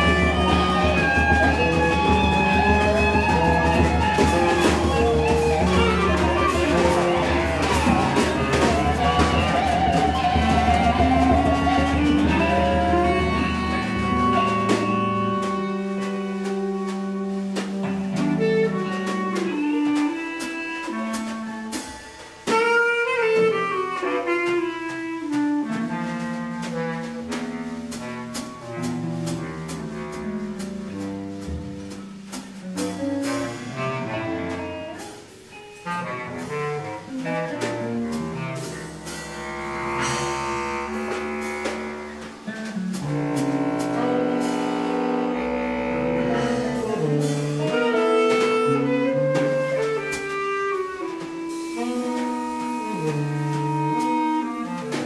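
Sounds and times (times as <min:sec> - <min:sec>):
electric guitar: 0:00.0 - 0:21.1, 0:37.5 - 0:55.0
bass clarinet: 0:00.0 - 0:55.0
drum kit hits: 0:00.0 - 0:55.0
saxophone: 0:00.0 - 0:55.0.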